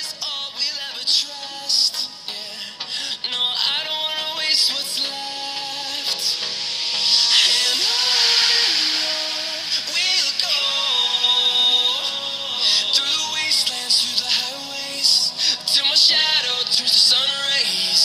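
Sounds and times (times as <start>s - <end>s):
song with singing through earbud: 0.0s - 18.0s.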